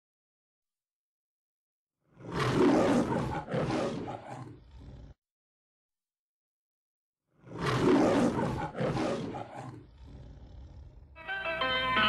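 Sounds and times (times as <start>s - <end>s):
lion roaring: 2.1s - 5.2s, 7.4s - 11.2s.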